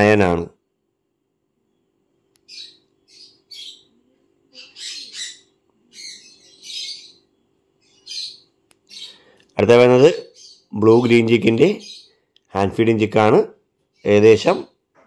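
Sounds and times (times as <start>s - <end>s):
parrot chick squawking: 2.5s - 7.2s, 7.8s - 9.3s.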